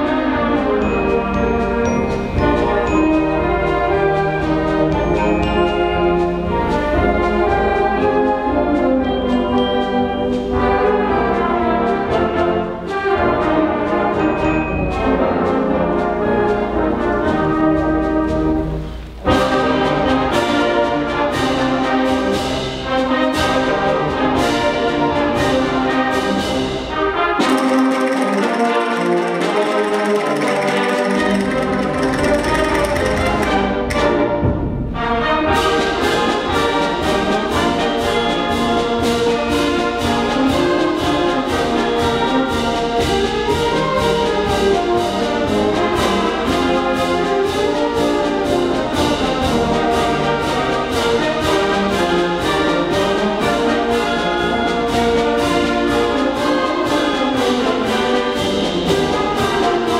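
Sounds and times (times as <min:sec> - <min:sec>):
concert band playing a march: 0:00.0 - 0:59.9.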